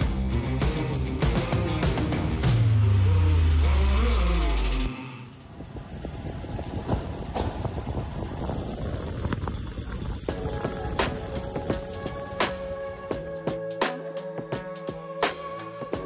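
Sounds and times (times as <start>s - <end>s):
bicycle tyre noise on road: 4.0s - 13.3s
wind rushing over microphone: 5.3s - 13.2s
music with falling pitch sweep: 10.3s - 16.0s.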